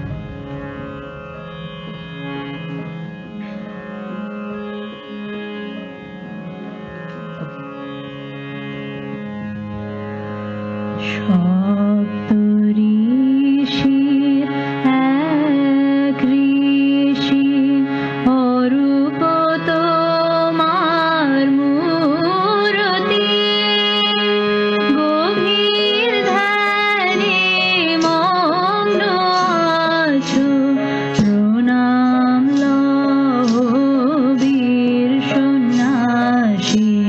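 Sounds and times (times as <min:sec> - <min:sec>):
harmonium melody: 0:00.0 - 0:37.0
person singing devotional song: 0:11.0 - 0:37.0.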